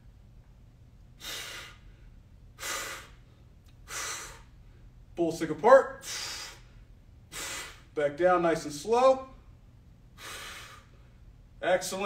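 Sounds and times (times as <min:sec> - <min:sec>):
man breathing hard: 0:01.2 - 0:04.9, 0:06.0 - 0:08.0, 0:10.1 - 0:11.2.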